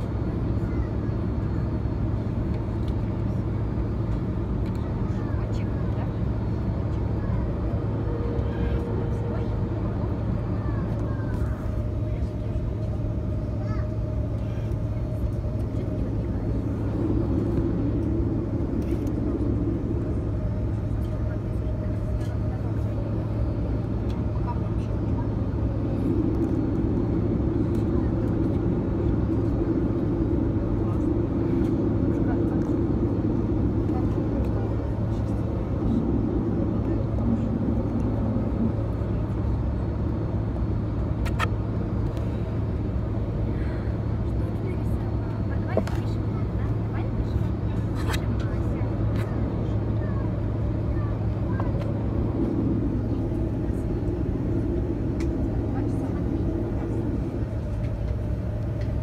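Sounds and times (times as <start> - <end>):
aircraft cabin engine drone: 0.0 - 59.0.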